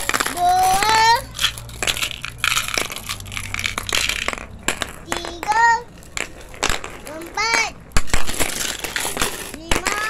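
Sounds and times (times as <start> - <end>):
glass marbles clicking and rattling: 0.0 - 10.0.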